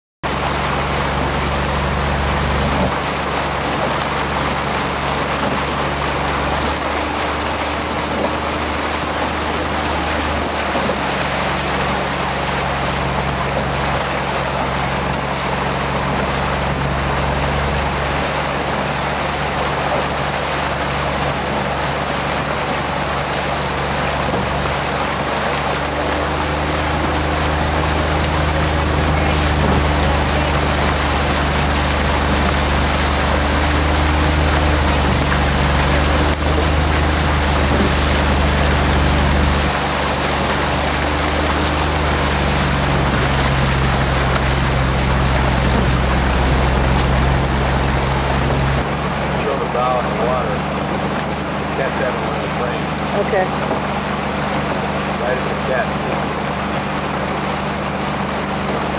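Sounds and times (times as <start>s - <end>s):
outboard motor running: 0.2s - 58.9s
wind and water rushing: 0.2s - 58.9s.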